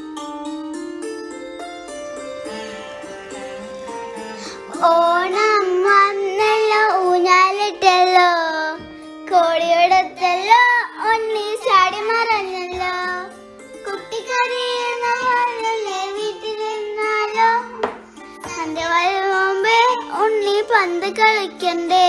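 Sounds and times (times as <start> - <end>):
instrumental accompaniment: 0.0 - 22.0
child singing: 4.7 - 22.0.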